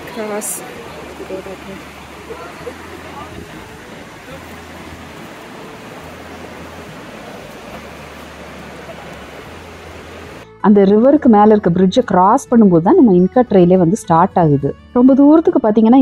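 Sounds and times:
river rapids roaring over rocks: 0.0s - 10.4s.

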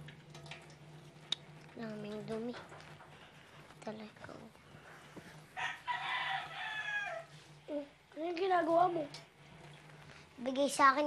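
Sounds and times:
rooster crowing: 5.6s - 7.4s.

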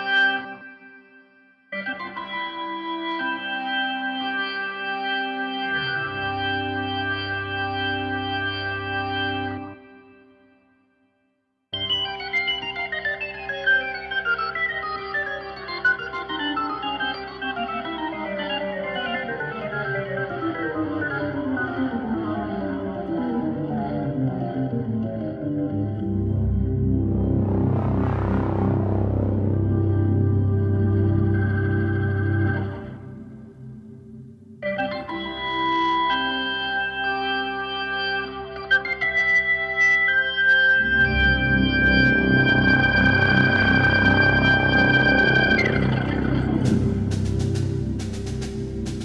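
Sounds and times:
instrumental keyboard music: 11.8s - 49.0s.

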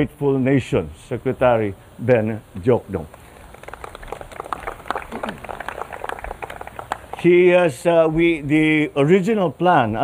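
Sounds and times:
audience applauding: 3.4s - 7.8s.

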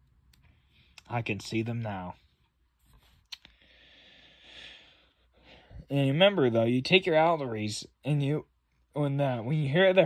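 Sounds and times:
soft rustle: 2.0s - 3.3s.

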